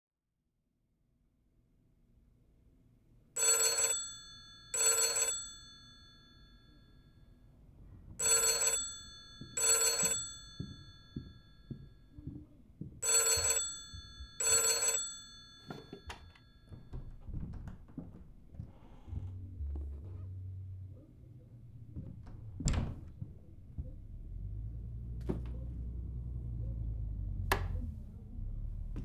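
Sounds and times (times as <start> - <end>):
telephone bell ringing: 3.4 - 7.4, 8.2 - 12.2, 13.0 - 16.9
faint low knocks: 16.7 - 20.9, 21.6 - 26.0.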